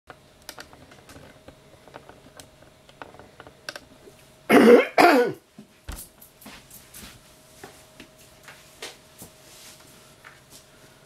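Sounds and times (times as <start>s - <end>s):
person coughing: 4.5s - 5.4s.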